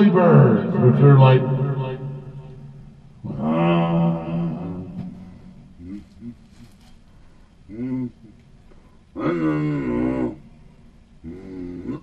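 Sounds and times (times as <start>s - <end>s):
man holding a long vowel: 0.0s - 6.7s.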